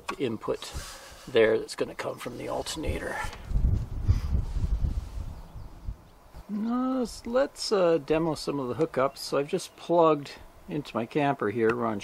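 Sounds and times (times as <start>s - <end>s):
wind buffeting microphone: 2.4s - 6.5s.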